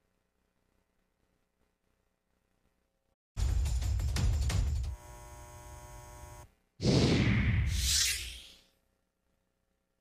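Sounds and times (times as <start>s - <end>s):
buzzy electrical hum: 4.8s - 6.6s.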